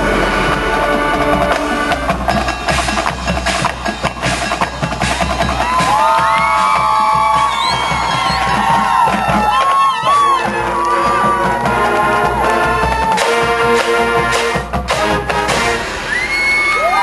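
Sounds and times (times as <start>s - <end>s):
marching band playing: 0.0s - 17.0s.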